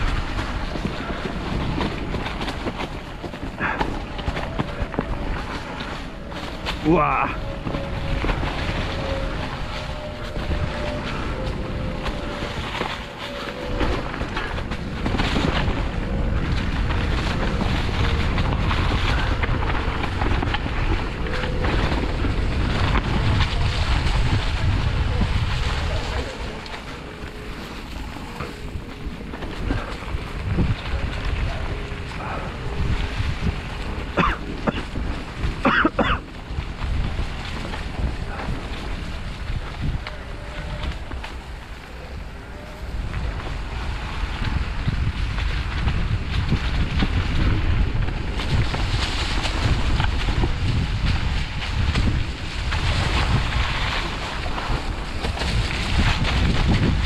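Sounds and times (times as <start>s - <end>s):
bike tyres on leafy dirt trail: 0.0s - 57.0s
wind buffeting microphone: 0.0s - 57.0s.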